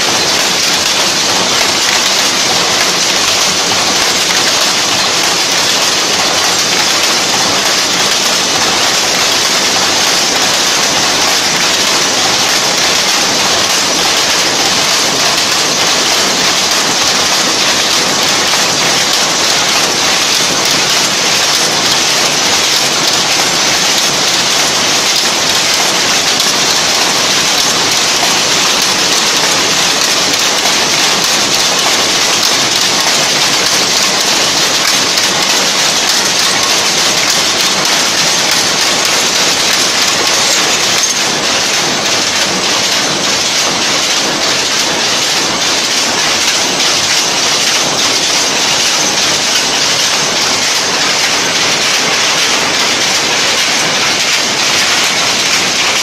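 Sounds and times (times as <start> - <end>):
power looms clattering: 0.0 - 56.0.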